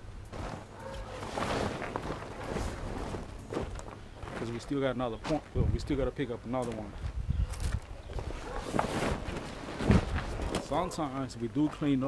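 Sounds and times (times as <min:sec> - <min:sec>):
vinyl rustling on a tarp: 0:00.2 - 0:05.6, 0:07.6 - 0:11.0.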